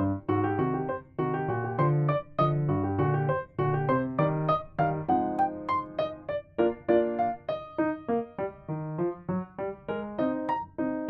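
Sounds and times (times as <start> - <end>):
bouncy solo piano melody: 0.0 - 11.0.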